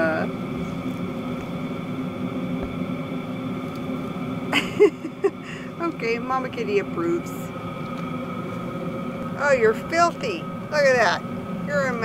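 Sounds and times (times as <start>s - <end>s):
vehicle engine idling hum: 0.0s - 12.0s.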